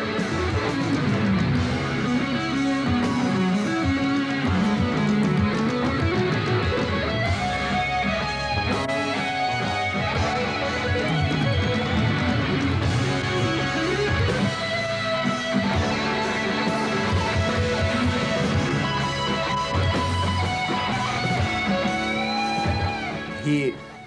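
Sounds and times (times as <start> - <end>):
electric guitar solo: 0.0 - 24.0
rock band backing: 0.0 - 24.0.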